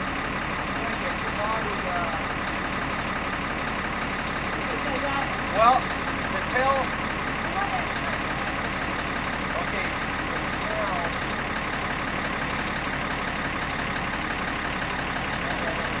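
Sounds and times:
crane engine idling: 0.0s - 16.0s
faint voices calling: 3.9s - 16.0s.

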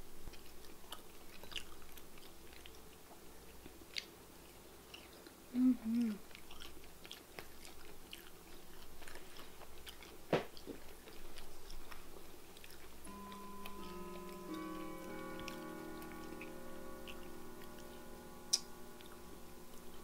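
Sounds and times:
chewing crispy food: 0.0s - 20.0s
soft background music: 13.1s - 20.0s.

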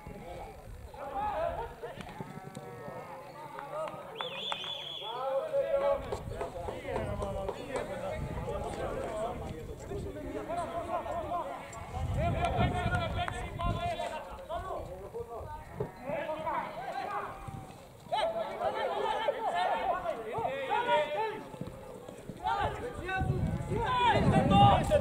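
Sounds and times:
people talking and calling out: 0.0s - 25.0s.

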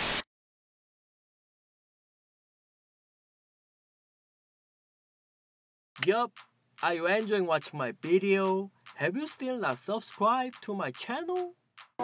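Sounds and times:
static hiss glitch effect: 0.0s - 0.2s.

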